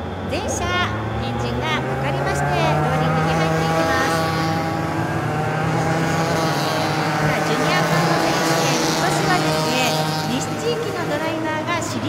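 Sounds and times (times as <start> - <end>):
kart engines running: 0.0 - 12.0.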